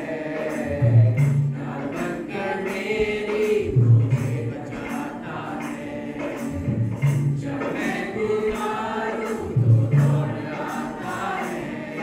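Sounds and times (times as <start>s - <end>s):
group singing gospel song: 0.0s - 12.0s
steady percussion: 0.0s - 12.0s.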